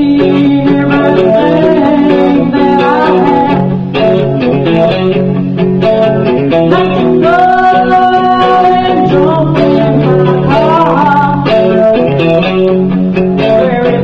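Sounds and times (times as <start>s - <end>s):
woman singing: 0.0s - 3.8s, 6.7s - 12.5s, 13.4s - 14.0s
plucked electric guitar: 0.0s - 14.0s.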